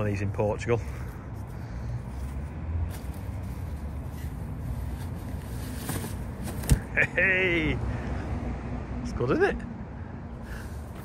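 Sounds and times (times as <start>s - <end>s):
umbrella canopy rustling: 2.1s - 6.9s
umbrella frame clicks: 5.7s - 6.9s.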